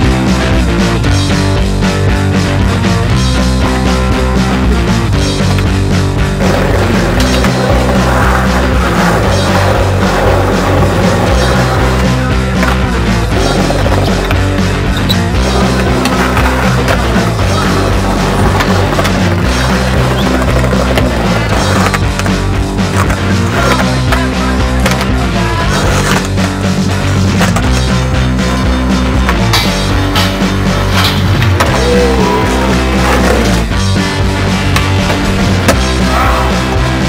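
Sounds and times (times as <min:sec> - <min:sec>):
loud background music: 0:00.0 - 0:37.0
skateboard wheels rolling on concrete: 0:00.0 - 0:37.0.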